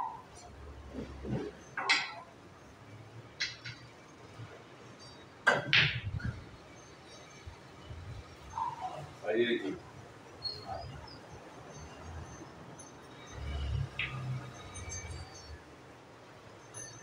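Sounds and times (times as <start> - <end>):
pool balls clicking: 1.0 - 2.3, 3.4 - 4.0, 5.0 - 6.4, 13.8 - 14.5
pool cue striking ball: 5.5 - 6.0.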